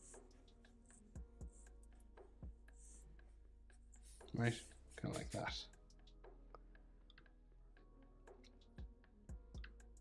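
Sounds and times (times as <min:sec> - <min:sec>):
marker drawing on paper: 0:00.0 - 0:02.0, 0:02.7 - 0:05.5.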